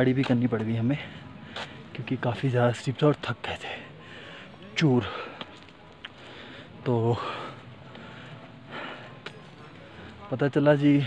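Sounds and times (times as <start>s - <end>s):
man breathing: 3.7s - 9.3s.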